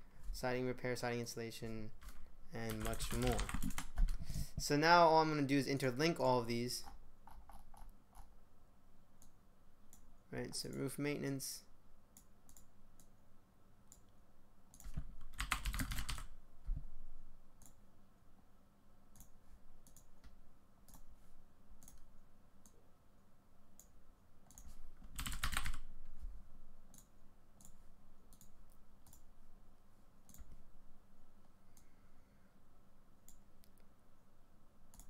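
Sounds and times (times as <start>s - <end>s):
keyboard keystrokes: 2.0s - 4.2s, 24.5s - 25.8s.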